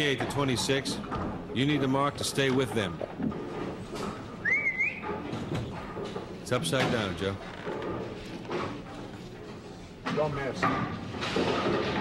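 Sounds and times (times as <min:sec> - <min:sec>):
person whistling: 0:04.4 - 0:05.0.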